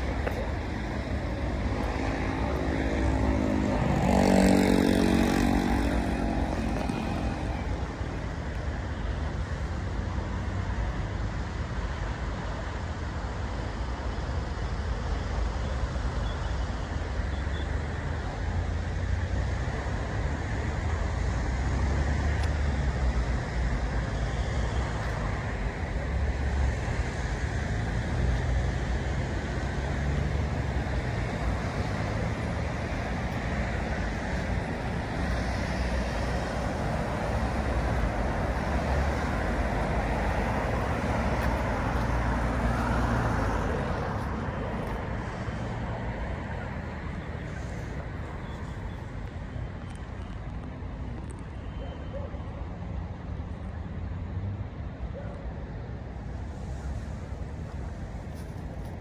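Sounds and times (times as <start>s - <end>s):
road traffic rumble: 0.0s - 59.0s.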